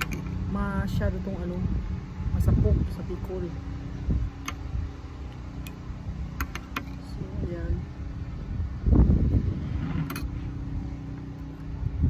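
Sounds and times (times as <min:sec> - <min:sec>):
lawn mower engine running: 0:00.0 - 0:12.0
wind rumble on microphone: 0:00.0 - 0:12.0.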